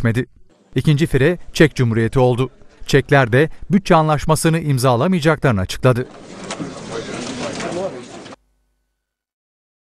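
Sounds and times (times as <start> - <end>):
murmur of many voices: 0.6 - 8.4.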